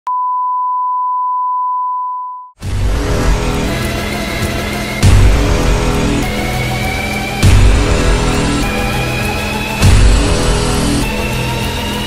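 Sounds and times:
steady test tone beep: 0.1 - 2.6.

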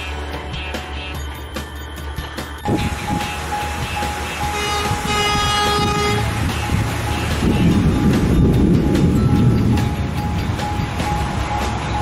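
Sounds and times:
background music: 0.0 - 12.0
train horn: 4.1 - 6.5.

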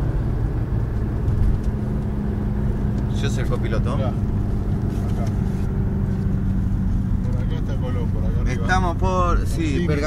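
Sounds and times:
car road and engine drone: 0.0 - 10.0.

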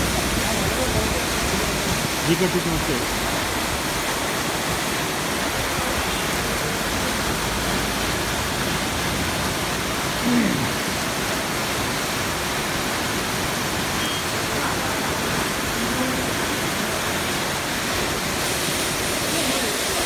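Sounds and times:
floodwater rushing through street: 0.0 - 20.0
heavy rain: 0.0 - 20.0.

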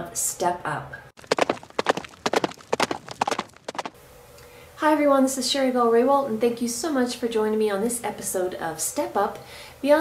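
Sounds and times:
rapid sharp taps: 1.2 - 4.0.

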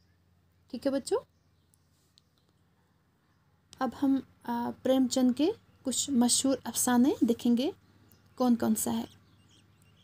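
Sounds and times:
faint small clicks: 1.7 - 2.6.

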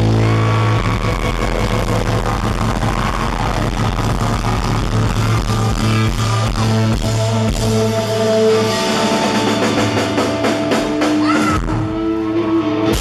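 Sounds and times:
bass guitar: 0.0 - 13.0
distorted electric guitars: 0.0 - 13.0
drums: 0.0 - 13.0.

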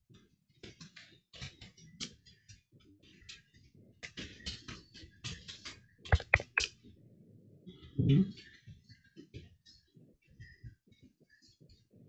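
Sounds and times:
keyboard typing: 6.1 - 6.7.

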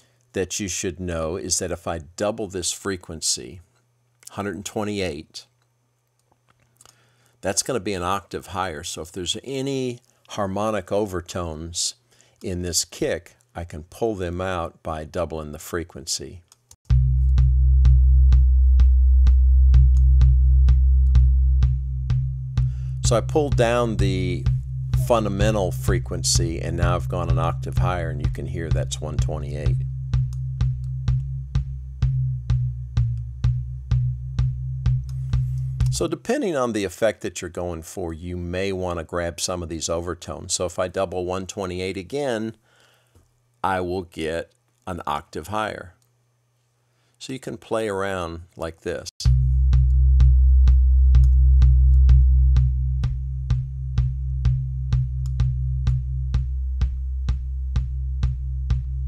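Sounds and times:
kick drum beat: 16.9 - 36.0, 49.3 - 59.0
steady low ringing tone: 16.9 - 36.0.

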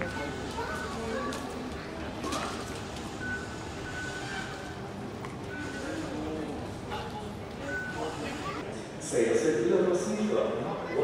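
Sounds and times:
indistinct crowd voices: 0.0 - 11.0.

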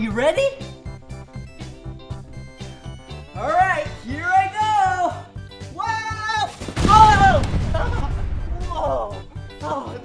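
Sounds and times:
foam blocks crashing over: 6.5 - 8.5.

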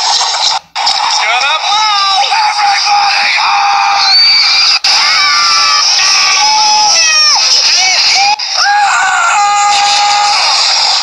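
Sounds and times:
cartoon characters screaming: 3.5 - 11.0.

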